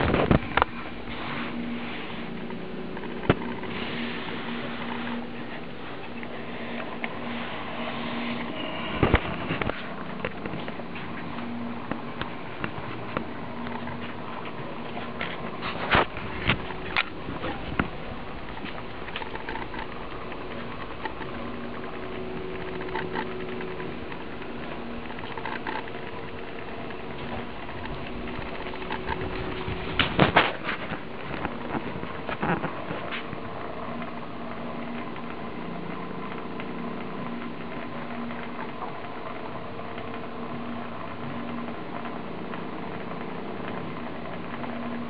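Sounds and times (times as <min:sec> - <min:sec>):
sharp clicks and knocks: 0:08.2 - 0:45.0.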